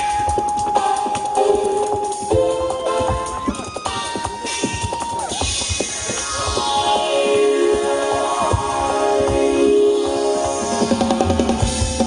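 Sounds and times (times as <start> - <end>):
piano: 0.0 - 12.0
bass: 8.2 - 12.0.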